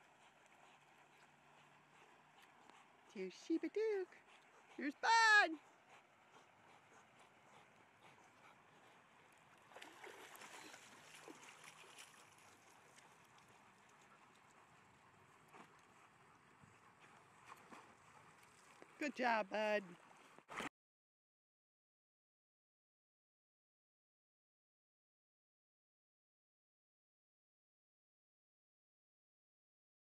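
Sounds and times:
faint rush of water: 0:09.5 - 0:14.7.

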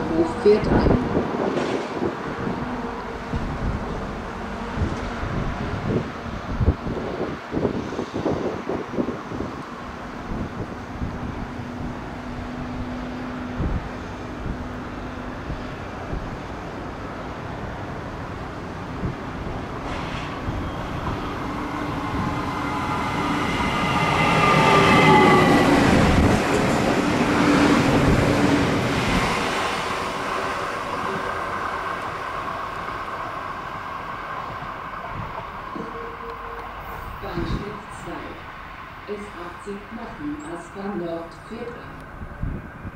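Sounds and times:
electric train arriving: 0:00.0 - 0:42.9.

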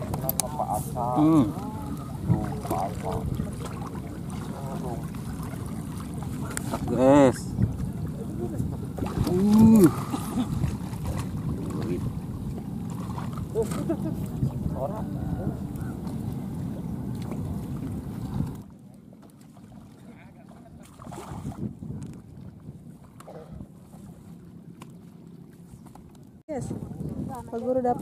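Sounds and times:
wind buffeting microphone: 0:00.0 - 0:18.7, 0:20.1 - 0:24.4, 0:25.1 - 0:28.0.

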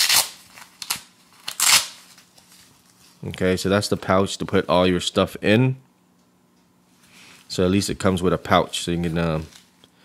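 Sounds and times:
velcro ripping open: 0:00.0 - 0:02.3.

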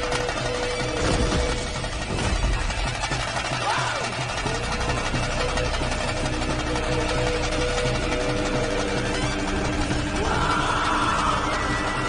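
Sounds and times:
dramatic film music: 0:00.0 - 0:12.0.

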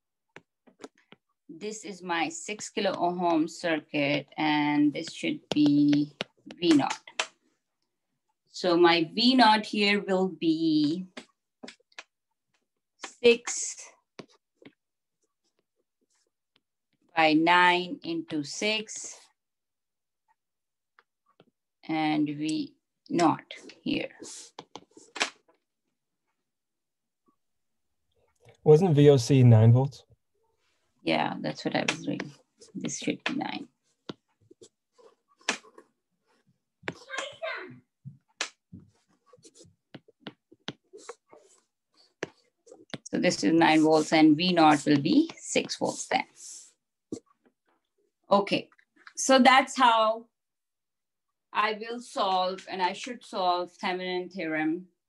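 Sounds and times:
stylus tapping on tablet screen: 0:00.3 - 0:01.2, 0:04.3 - 0:07.4, 0:22.3 - 0:25.6, 0:31.6 - 0:37.4, 0:38.0 - 0:46.4.

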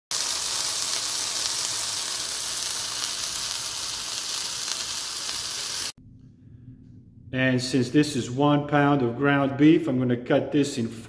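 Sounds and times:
burger patty sizzling in pan: 0:00.1 - 0:06.0.

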